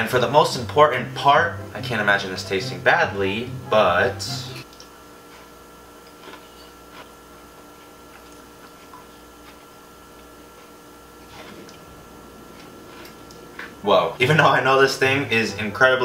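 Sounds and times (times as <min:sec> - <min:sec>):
faint hum: 0:00.0 - 0:16.0.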